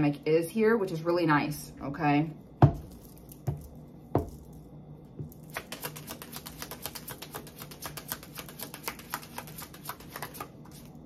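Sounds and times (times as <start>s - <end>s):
cards being shuffled: 5.3s - 11.0s.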